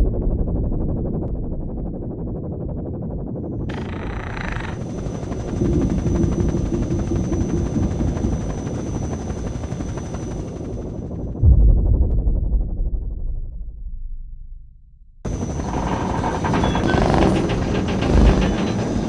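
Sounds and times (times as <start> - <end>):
helicopter rotor chop: 3.3 - 11.4, 15.3 - 19.0
heavy low thud: 11.4 - 15.3
high whine and rushing hiss: 15.3 - 19.0.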